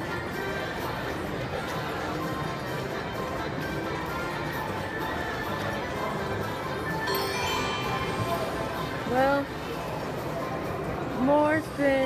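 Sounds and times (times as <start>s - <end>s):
slot machine game music: 6.9s - 9.5s.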